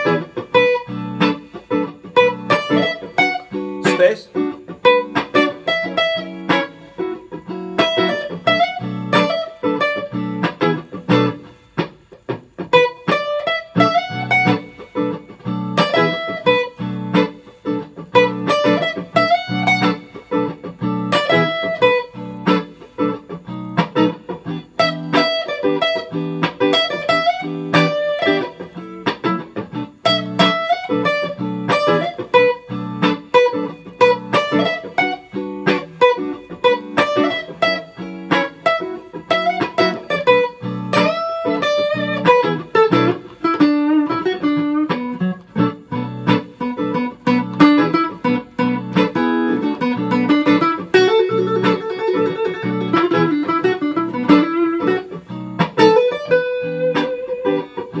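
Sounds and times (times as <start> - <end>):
blues backing track: 0.0 - 58.0
electric guitar blues solo: 0.0 - 58.0.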